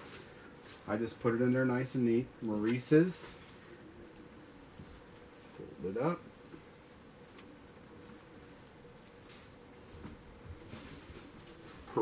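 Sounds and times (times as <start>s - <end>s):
faint buzzing hum: 0.0s - 12.0s.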